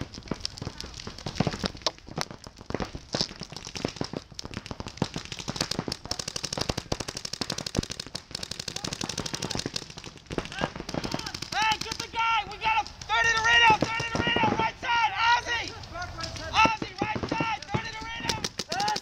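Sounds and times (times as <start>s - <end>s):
paintball markers firing: 0.0s - 14.7s, 15.7s - 19.0s.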